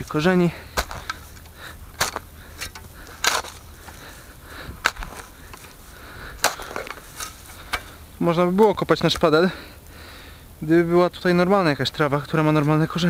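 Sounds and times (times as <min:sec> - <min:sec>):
spade cutting into soil: 0:00.8 - 0:04.0, 0:04.8 - 0:05.7, 0:06.4 - 0:08.0.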